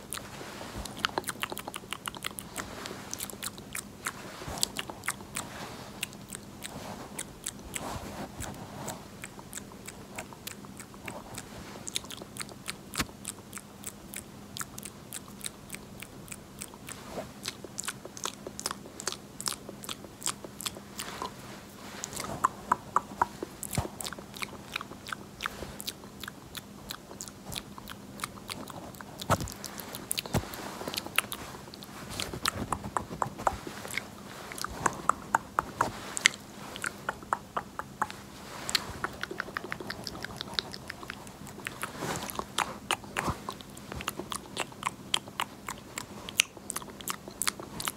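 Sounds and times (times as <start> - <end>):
wet mouth clicks and pops: 22.1 - 23.8, 34.7 - 38.2, 38.8 - 41.2
wet mouth clicks and smacks: 22.1 - 25.2, 32.4 - 47.9.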